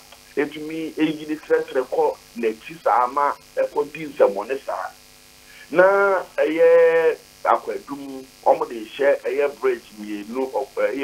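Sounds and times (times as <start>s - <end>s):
man speaking over telephone: 0.4s - 5.0s, 5.6s - 11.0s.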